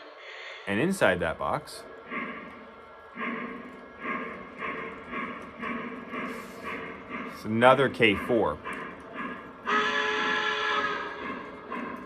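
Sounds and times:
model steam locomotive chuffing: 0.0s - 12.0s.

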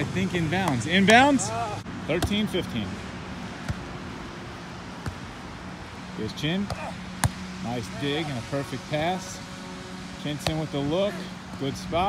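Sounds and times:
steady outdoor hiss: 0.0s - 12.0s
hand slapping volleyball: 0.6s - 1.3s, 2.1s - 2.4s, 6.7s - 7.4s, 10.4s - 10.6s.

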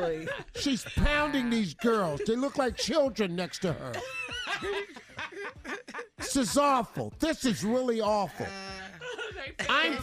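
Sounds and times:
people snickering and laughing: 0.0s - 6.8s.

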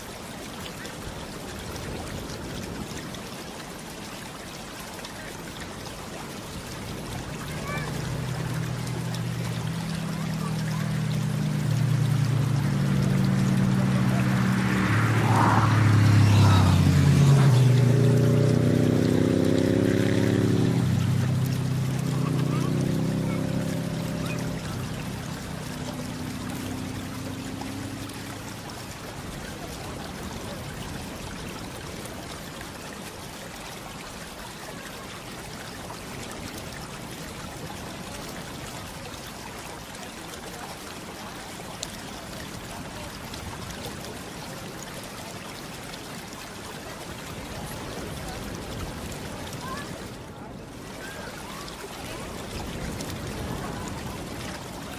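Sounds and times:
running water trickling: 0.0s - 54.9s.

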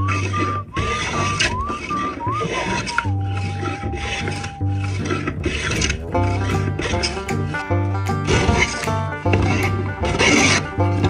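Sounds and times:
plane rasping along wood: 0.0s - 11.0s
background music: 1.3s - 11.0s.

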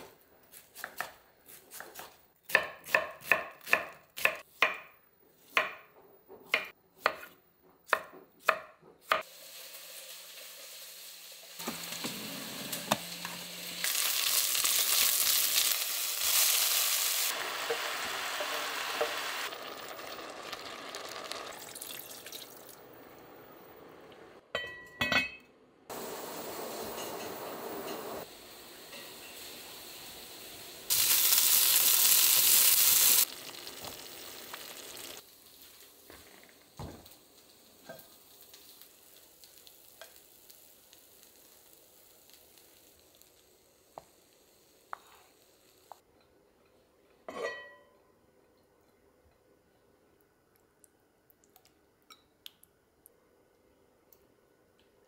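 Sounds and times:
vegetables sizzling in a pot: 9.0s - 22.6s, 25.9s - 46.0s.

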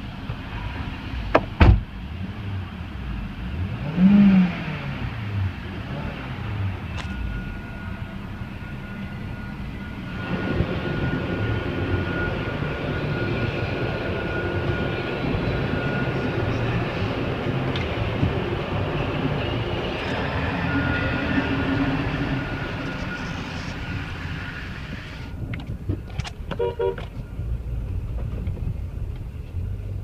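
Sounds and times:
car engine revving: 0.7s - 8.2s, 10.0s - 25.4s
thin steady whine: 5.5s - 30.0s.

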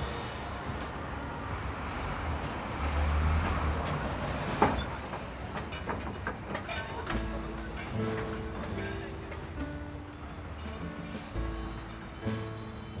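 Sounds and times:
street traffic noise: 0.0s - 13.0s.

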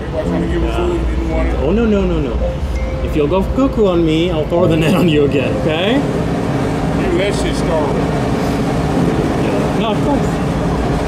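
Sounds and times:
low mechanical drone: 0.0s - 11.0s
man's voice: 4.4s - 5.9s.

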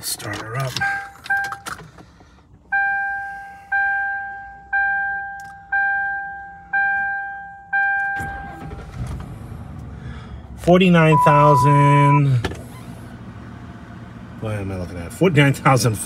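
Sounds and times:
car engine cranking and starting: 0.0s - 3.8s, 7.7s - 16.0s
dashboard warning chime dings: 0.6s - 1.7s, 2.7s - 8.8s, 11.0s - 12.2s.

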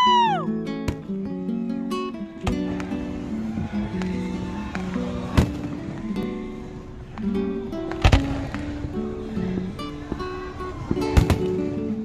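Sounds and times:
acoustic guitar music: 0.0s - 12.0s
firework bang: 2.4s - 6.1s, 7.8s - 11.8s
faint firework pops: 7.1s - 11.8s.

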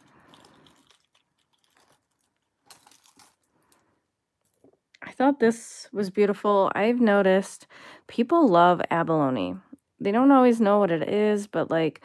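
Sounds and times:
beaded necklace clicking: 0.0s - 3.8s.

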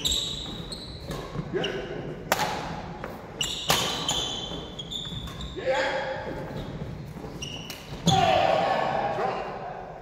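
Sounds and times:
shoes squeaking on court: 0.0s - 2.0s, 3.0s - 8.3s
racket hitting shuttlecock: 2.3s - 4.6s
loud shout: 8.0s - 10.0s.

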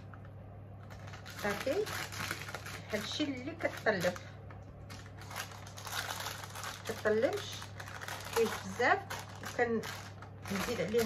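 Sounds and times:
baking paper crinkling: 0.8s - 11.0s.

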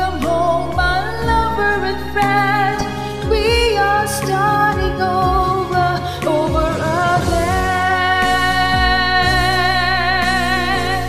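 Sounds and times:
pop ballad backing track: 0.0s - 11.0s
drum beat: 4.8s - 9.8s.

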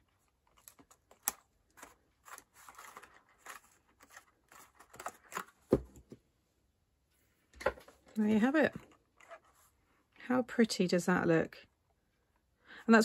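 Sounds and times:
paper rustling and scraping: 0.5s - 5.5s.

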